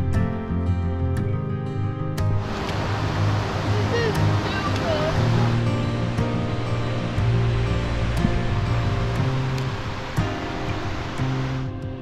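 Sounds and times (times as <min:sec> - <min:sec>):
music with sustained notes: 0:00.0 - 0:12.0
river rushing: 0:02.2 - 0:12.0.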